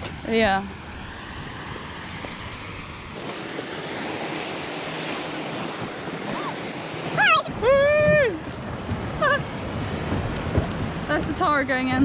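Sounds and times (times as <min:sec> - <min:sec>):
sea waves: 0:00.0 - 0:12.0
wind buffeting microphone: 0:05.3 - 0:12.0.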